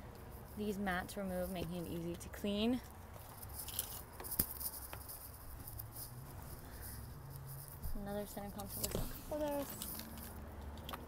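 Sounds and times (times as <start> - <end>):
rustling handling noise: 0.1 - 11.0.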